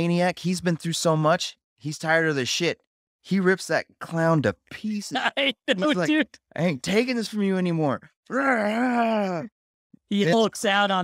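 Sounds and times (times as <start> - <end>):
man groaning: 8.3 - 9.5.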